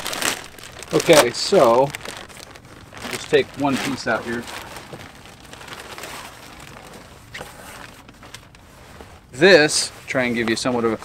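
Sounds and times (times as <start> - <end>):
fabric handling: 0.0 - 11.0
faint crackles: 0.0 - 11.0
plastic bag rustling: 0.0 - 11.0.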